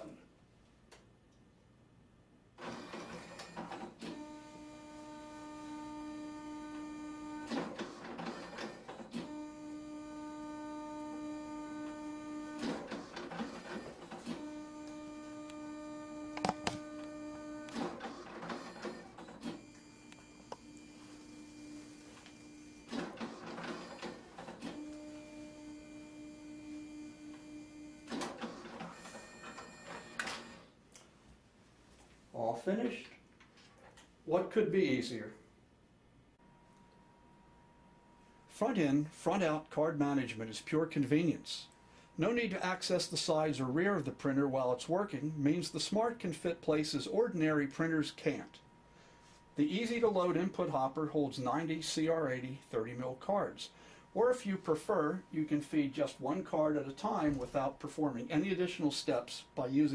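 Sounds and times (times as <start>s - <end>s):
card printer motor whine: 2.6s - 30.6s.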